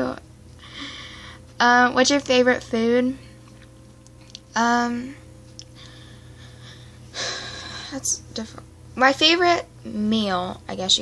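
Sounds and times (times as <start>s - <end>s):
woman gasping: 0.6s - 1.4s, 5.8s - 8.0s.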